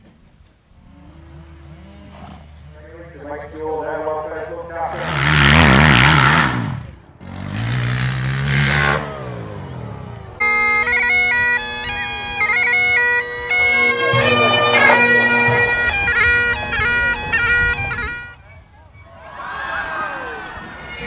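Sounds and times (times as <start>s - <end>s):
quad bike engine revving: 0.7s - 18.1s.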